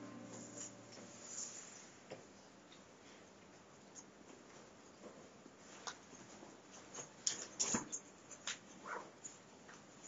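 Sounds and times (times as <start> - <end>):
intro music: 0.0 - 1.6
small clicks and rustles: 2.1 - 10.0.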